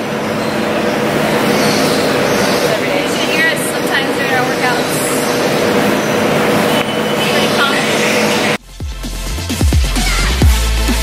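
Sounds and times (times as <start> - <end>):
faint voices: 2.0 - 5.8, 7.2 - 8.6
electronic music with deep bass: 8.2 - 11.0.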